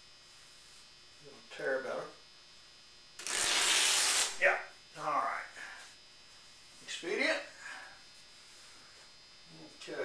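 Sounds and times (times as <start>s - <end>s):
canvas cloth tearing: 3.2s - 4.4s.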